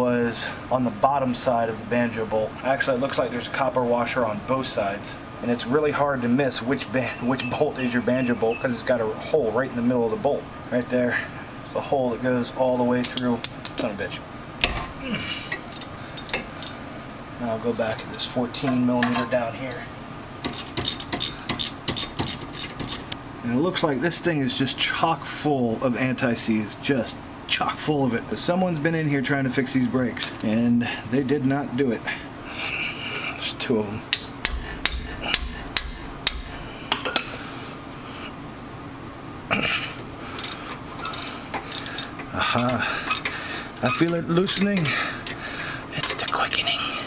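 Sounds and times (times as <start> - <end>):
hammer striking metal: 34.1 - 37.3
tool handling clatter: 40.4 - 42.3, 43.0 - 45.4.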